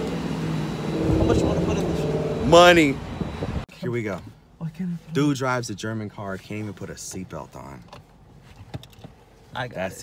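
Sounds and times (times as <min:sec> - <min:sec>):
loud car engine driving by: 0:00.0 - 0:03.6.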